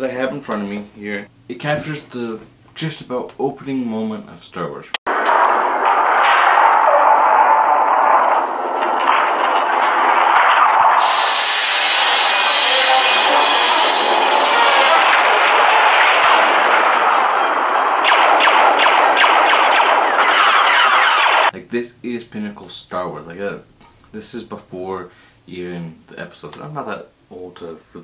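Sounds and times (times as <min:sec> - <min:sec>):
explosion: 0:05.1 - 0:21.5
rapid blaster fire: 0:05.1 - 0:21.5.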